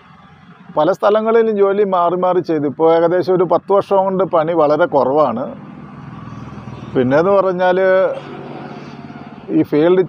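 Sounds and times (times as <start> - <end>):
man speaking: 0.8 - 5.6, 7.0 - 8.3, 9.5 - 10.0.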